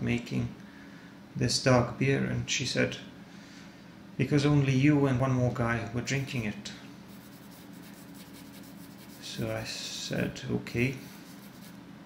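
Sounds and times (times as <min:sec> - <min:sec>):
paintbrush rubbing on paper: 0:07.1 - 0:09.8, 0:11.0 - 0:11.8.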